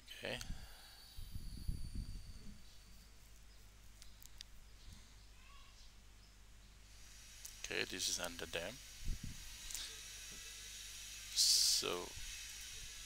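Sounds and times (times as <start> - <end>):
steady low hum: 0.0 - 13.0
faint clicks: 4.0 - 4.5.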